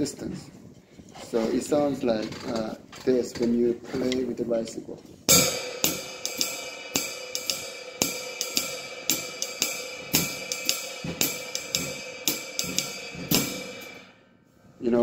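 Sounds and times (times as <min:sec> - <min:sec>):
ride cymbal swing pattern: 0:05.3 - 0:14.3
soft bass drum: 0:07.4 - 0:14.0.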